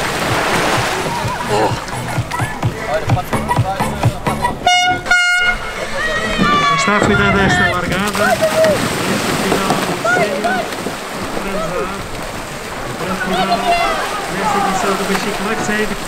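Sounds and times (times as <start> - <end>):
voices: 0.7 - 16.0
air horn blasts: 4.6 - 6.0.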